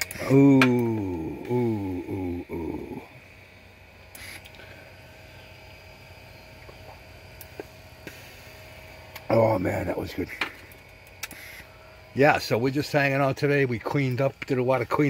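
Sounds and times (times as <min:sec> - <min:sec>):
quiet outdoor background: 0:00.0 - 0:15.0
man's wordless vocal sounds: 0:00.2 - 0:03.2.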